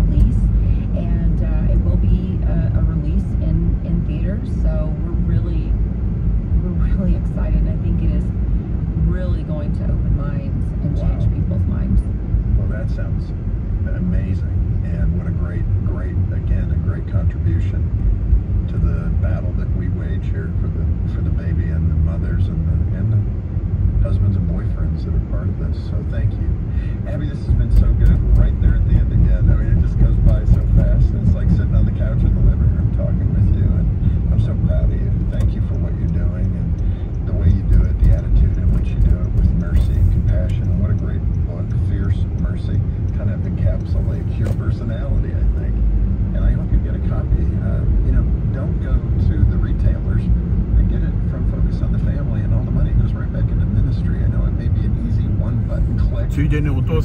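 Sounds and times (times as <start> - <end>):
car road and engine rumble: 0.0 - 57.0.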